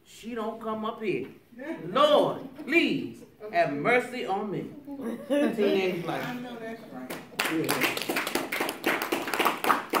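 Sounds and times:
laughter: 0:04.9 - 0:06.0
audience clapping: 0:07.0 - 0:10.0.

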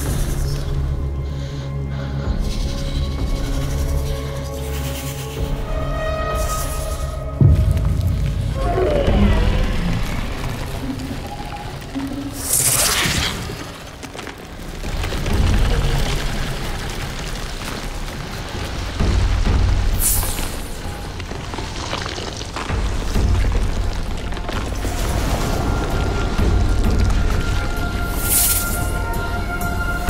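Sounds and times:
deep low booms: 0:07.2 - 0:11.3.

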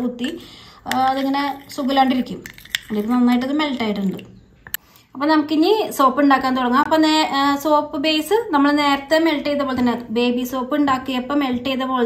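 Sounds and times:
woman talking: 0:00.0 - 0:04.4, 0:05.2 - 0:12.0.

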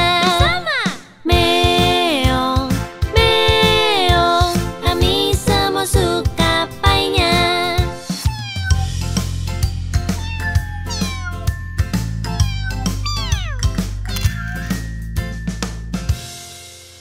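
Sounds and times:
children's music with steady beat: 0:00.0 - 0:17.0
cartoon cat meowing: 0:08.2 - 0:09.0, 0:10.1 - 0:11.6, 0:12.3 - 0:14.6.

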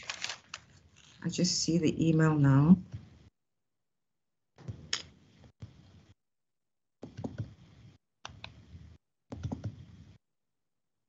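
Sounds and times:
faint keyboard typing: 0:00.0 - 0:01.2.

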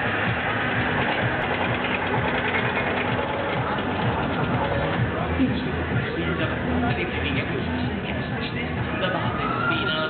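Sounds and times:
dense background noise: 0:00.0 - 0:10.0
ride machinery humming: 0:00.0 - 0:10.0.

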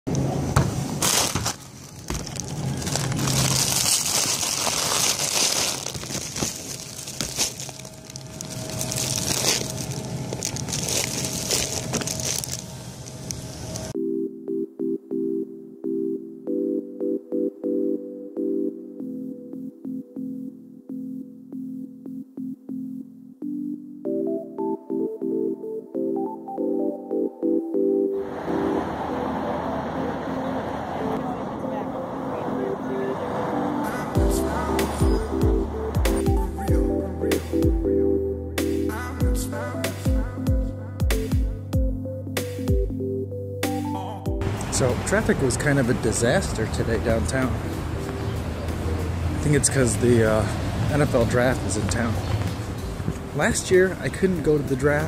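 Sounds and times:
city street traffic: 0:00.1 - 0:14.0, 0:28.2 - 0:39.7, 0:43.4 - 0:55.0
bag and packages rustling: 0:00.9 - 0:13.9
items dropping into bag: 0:01.0 - 0:12.7
electric piano music: 0:02.6 - 0:49.5.

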